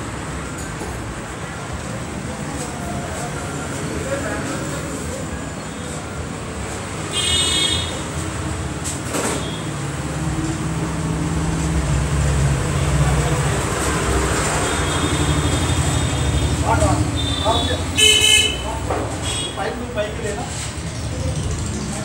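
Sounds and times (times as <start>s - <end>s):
road traffic noise: 0.0s - 22.0s
vehicle horn tooting: 7.1s - 8.0s, 14.6s - 19.6s.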